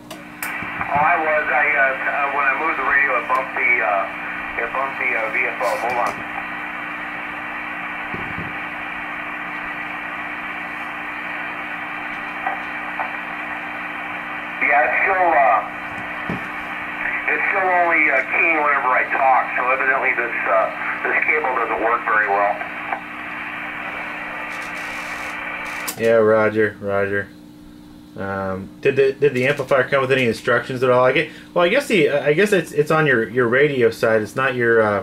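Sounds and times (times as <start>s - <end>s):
radio receiver hiss: 0.0s - 26.2s
steady low hum: 0.0s - 35.0s.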